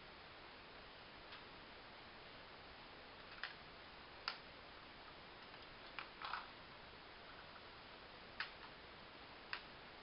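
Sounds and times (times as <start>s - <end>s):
faint steady hiss: 0.0s - 10.0s.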